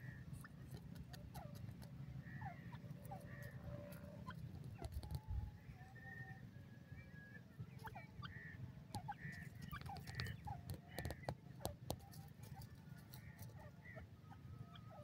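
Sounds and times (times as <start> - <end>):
bird chirps and calls: 7.0 - 15.0.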